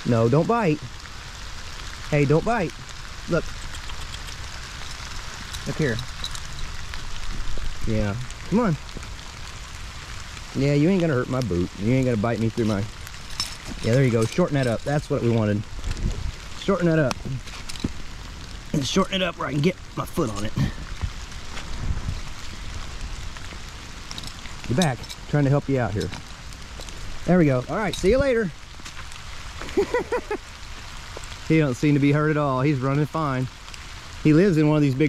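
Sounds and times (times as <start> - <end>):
rain on dead leaves: 0.0 - 35.0.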